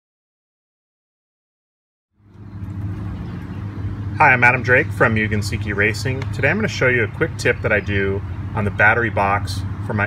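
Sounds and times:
low mechanical hum: 2.2 - 10.0.

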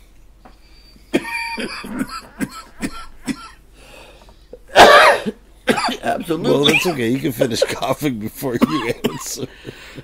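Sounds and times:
man coughing: 1.1 - 3.6, 4.7 - 7.9, 8.5 - 9.5.

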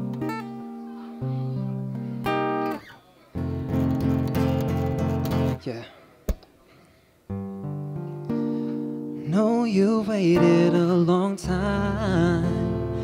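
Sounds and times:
acoustic guitar strumming: 0.0 - 5.7, 7.3 - 13.0.

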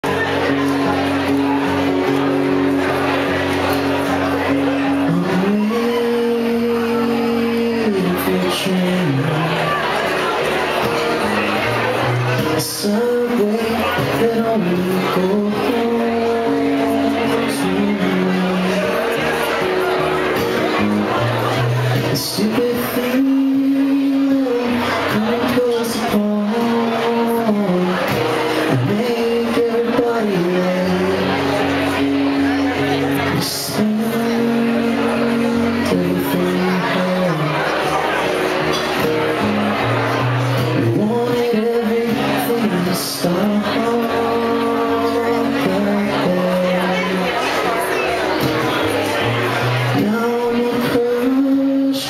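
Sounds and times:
acoustic guitar strumming: 0.0 - 52.0.

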